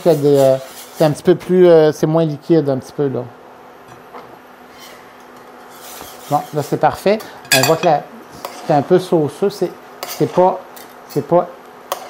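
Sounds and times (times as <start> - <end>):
wire whisk scraping a metal pan: 0.0 - 1.2, 5.6 - 6.9, 7.5 - 9.0, 10.0 - 10.5.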